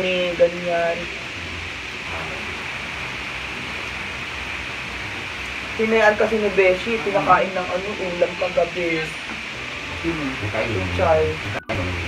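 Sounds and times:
faint low hum: 0.0s - 12.0s
room noise hiss: 0.0s - 12.0s.

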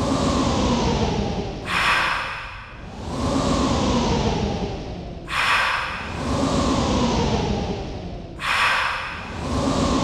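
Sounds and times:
hissy swelling whoosh: 1.6s - 3.8s, 5.2s - 7.2s, 8.4s - 10.0s.

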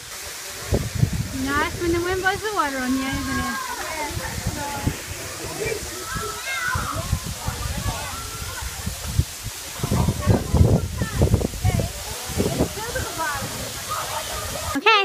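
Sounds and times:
wind buffeting microphone: 0.0s - 14.8s
faint voices: 0.0s - 15.0s
waterfall rushing: 0.0s - 15.0s.

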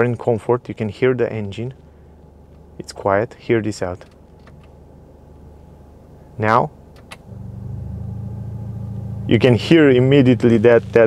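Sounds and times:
car engine idling: 7.2s - 11.0s.

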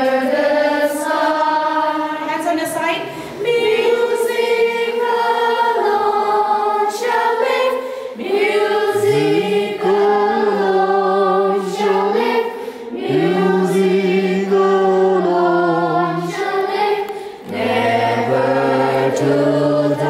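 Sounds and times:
children singing together: 0.0s - 2.3s, 3.2s - 20.0s.

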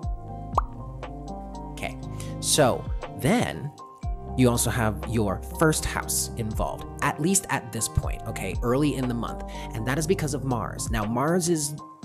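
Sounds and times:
lo-fi background music: 0.0s - 12.0s.

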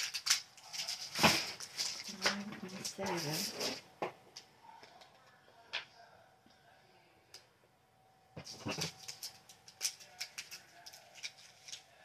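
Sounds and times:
plastic bag crinkling: 0.0s - 3.8s, 8.4s - 12.0s.

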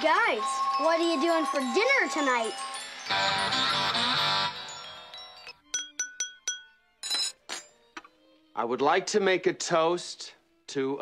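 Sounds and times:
spoon clinking on wine glass: 5.4s - 7.7s.

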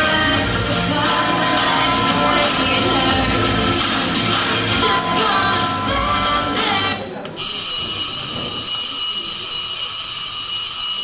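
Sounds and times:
music: 0.0s - 7.2s
high-pitched electronic tone: 0.0s - 11.0s.

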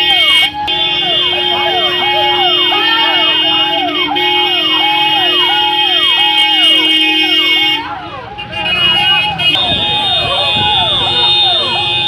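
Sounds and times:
ambulance siren yelping: 0.0s - 12.0s.

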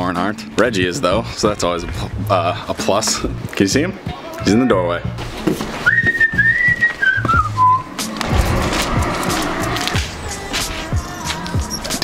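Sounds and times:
background music: 0.0s - 12.0s
person whistling high note: 5.8s - 8.1s.

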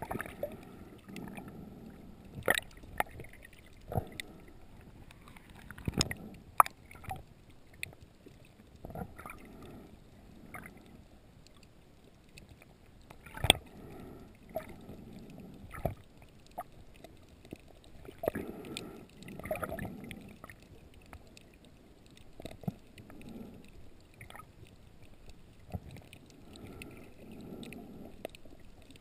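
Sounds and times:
muffled underwater water movement: 0.0s - 29.0s.

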